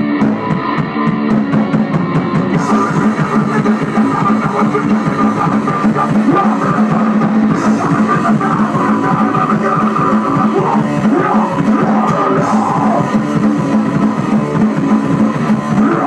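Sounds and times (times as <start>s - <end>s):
bass guitar: 0.0s - 16.0s
drum kit: 0.0s - 16.0s
electric guitar: 0.0s - 16.0s
singer shouting: 2.6s - 13.3s, 15.5s - 16.0s.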